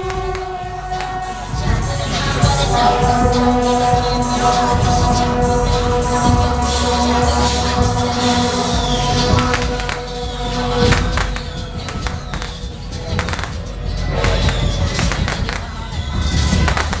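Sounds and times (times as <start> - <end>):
firecrackers popping: 0.0 - 1.5, 9.4 - 17.0
drum beats: 0.0 - 17.0.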